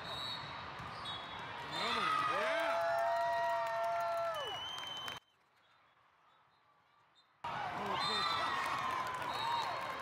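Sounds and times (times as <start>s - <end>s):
crowd in a large hall: 0.0s - 10.0s.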